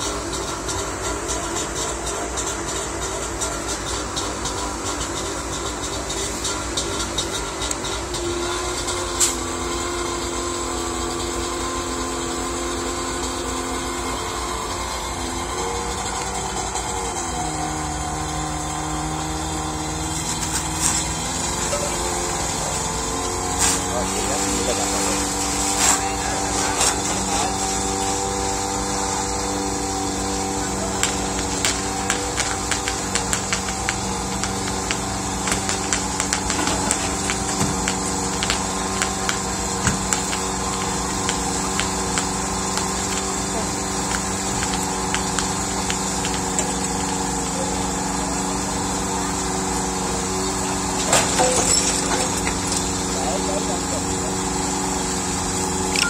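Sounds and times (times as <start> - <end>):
fire engine pump running: 0.0 - 56.0
background voices: 21.4 - 27.8, 50.6 - 54.6.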